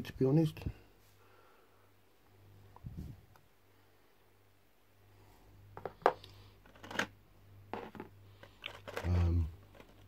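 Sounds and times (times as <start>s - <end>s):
small figures clicking and knocking: 7.7s - 10.0s
plastic rustling: 8.3s - 10.0s.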